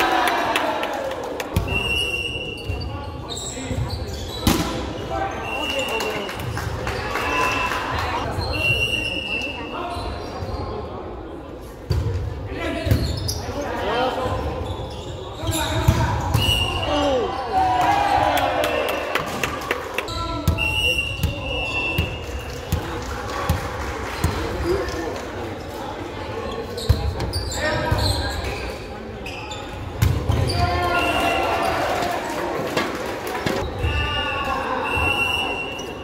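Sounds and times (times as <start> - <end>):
sneakers squeaking on gym floor: 1.6 - 6.5, 8.3 - 10.9, 12.8 - 17.5, 26.4 - 31.7.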